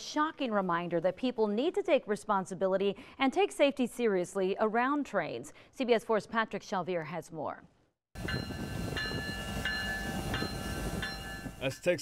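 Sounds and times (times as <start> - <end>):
locomotive bell ringing: 8.2 - 12.0.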